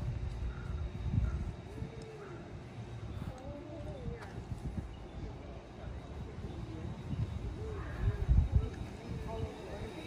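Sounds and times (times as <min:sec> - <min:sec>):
indistinct voices: 0:00.5 - 0:10.0.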